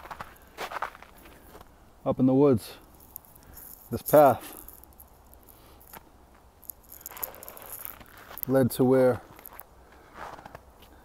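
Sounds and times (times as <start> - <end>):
footsteps on snow: 0.0 - 1.8, 5.4 - 11.0.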